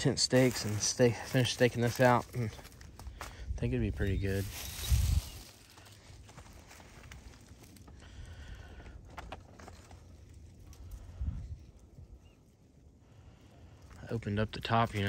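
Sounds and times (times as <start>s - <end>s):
footsteps on dry leaves: 0.1s - 8.0s, 14.4s - 15.0s.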